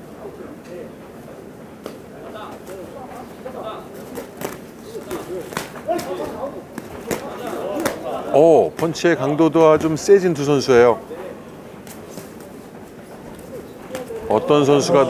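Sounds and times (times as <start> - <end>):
boxing gloves smacking: 4.1 - 8.1.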